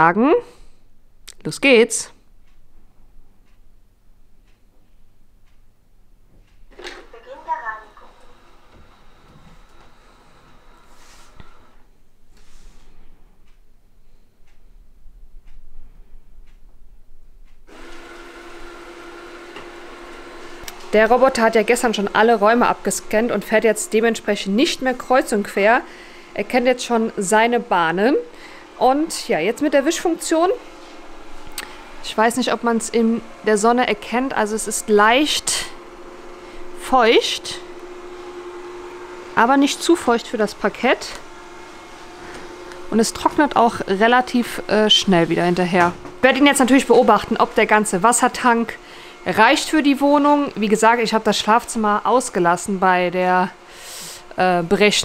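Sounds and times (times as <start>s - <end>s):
robot vacuum motor whirring: 17.7s - 55.0s.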